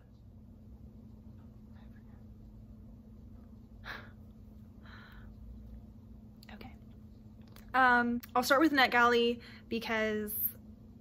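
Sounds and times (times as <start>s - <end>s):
faint room hum: 0.0s - 11.0s
woman whispering: 1.6s - 2.4s, 6.4s - 6.9s.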